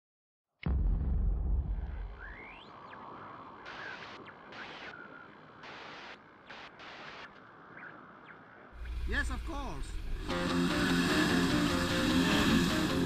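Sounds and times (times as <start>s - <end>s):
deep rumble: 0.7s - 2.7s
thin whistling glides: 2.2s - 6.1s
hissing swells: 2.2s - 7.8s, 8.8s - 13.0s.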